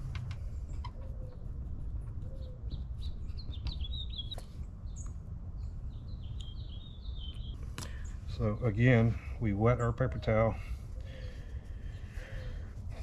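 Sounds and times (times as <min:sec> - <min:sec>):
small birds chirping: 0:00.0 - 0:13.0
steady low rumble: 0:00.0 - 0:13.0.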